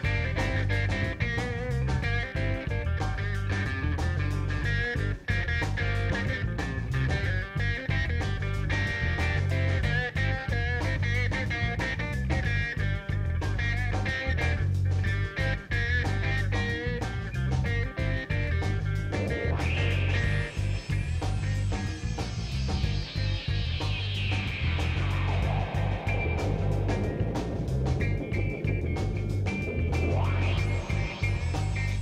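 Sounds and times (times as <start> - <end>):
bass: 0.0 - 32.0
electric guitar melody: 0.0 - 32.0
second guitar: 0.0 - 32.0
steady drum beat: 0.0 - 32.0.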